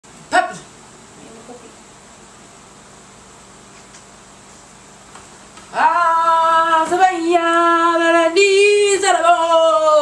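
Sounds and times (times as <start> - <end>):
electric fan hiss: 0.0 - 10.0.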